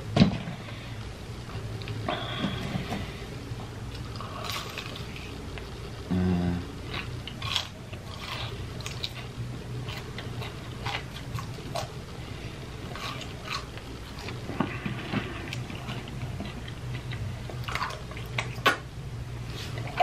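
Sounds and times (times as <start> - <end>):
steady low hum: 0.0 - 20.0
chewing with wet clicks: 15.5 - 18.9.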